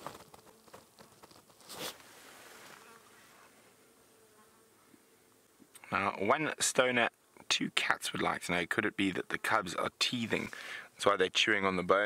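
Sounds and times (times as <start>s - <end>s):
faint insect buzz: 0.0s - 6.2s, 8.8s - 11.0s.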